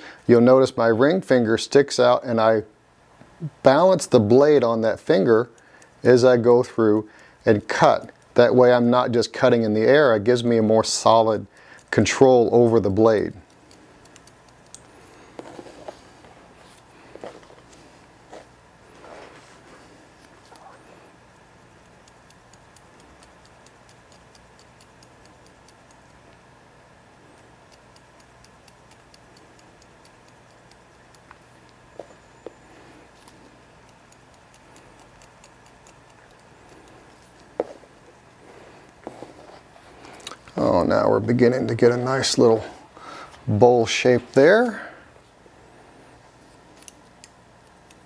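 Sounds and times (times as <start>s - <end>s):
scissors snipping hair: 12.9s - 14.9s, 20.1s - 26.4s, 27.4s - 31.8s, 33.1s - 37.8s, 46.7s - 48.0s
scissors clicks: 13.5s - 14.9s, 21.8s - 26.2s, 27.4s - 31.8s, 33.2s - 37.0s, 46.8s - 48.0s.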